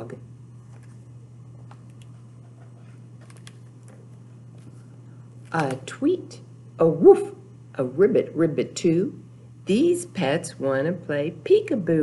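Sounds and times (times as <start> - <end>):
steady low hum: 0.0 - 12.0
book pages clicking and rustling: 1.6 - 4.8.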